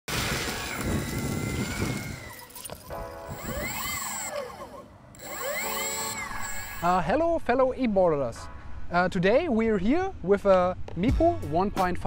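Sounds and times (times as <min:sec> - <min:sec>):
skateboard wheels rumbling on gravel: 0:00.1 - 0:02.3
electric motor whine: 0:00.2 - 0:07.0.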